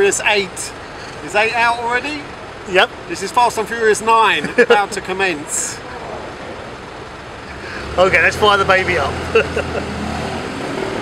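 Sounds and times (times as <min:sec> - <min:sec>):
city street noise: 0:00.0 - 0:11.0.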